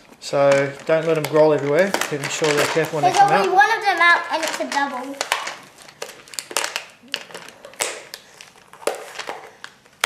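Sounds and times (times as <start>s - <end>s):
plastic lid and tape crinkling: 0.0s - 10.0s.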